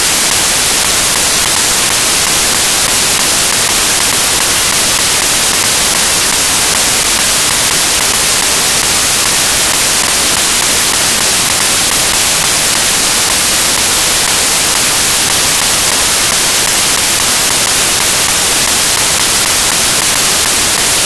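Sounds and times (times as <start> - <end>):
loud static hiss: 0.0 - 21.0.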